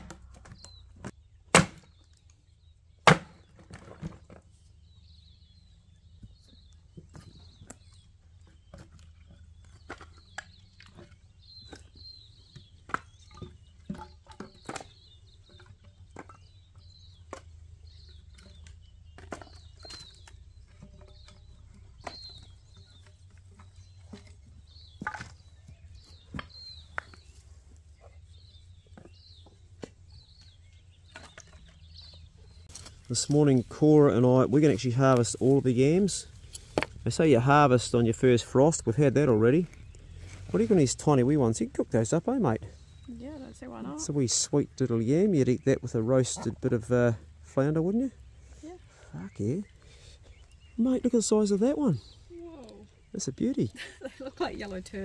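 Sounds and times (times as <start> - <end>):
axe chopping firewood: 1.5 - 2.1, 3.0 - 4.2, 24.9 - 25.5, 36.6 - 37.0
split wood pieces clattering: 8.7 - 12.0, 18.2 - 25.4, 31.0 - 33.4.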